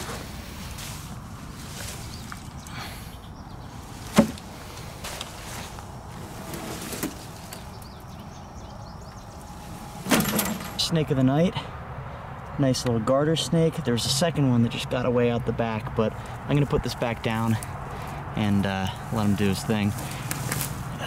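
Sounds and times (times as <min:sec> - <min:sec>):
footsteps in wet undergrowth: 0:00.0 - 0:02.9, 0:03.7 - 0:07.9, 0:18.9 - 0:21.0.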